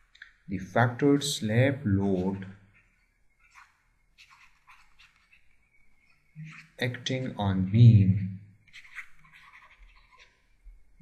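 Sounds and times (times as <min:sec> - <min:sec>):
stylus scratching on pen tablet: 0:01.0 - 0:05.5, 0:06.1 - 0:07.8, 0:08.6 - 0:10.5.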